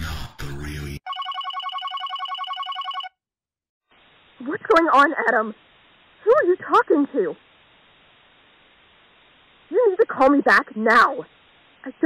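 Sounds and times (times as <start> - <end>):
telephone ringtone warbling trill: 1.1 - 3.2.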